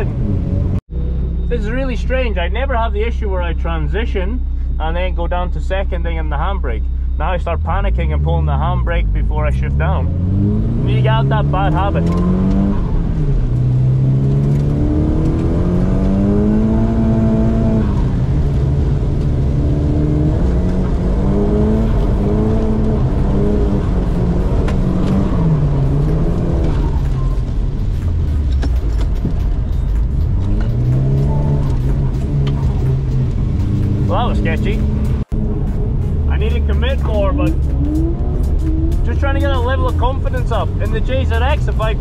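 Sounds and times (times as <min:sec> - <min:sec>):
car engine revving: 0:00.0 - 0:42.0.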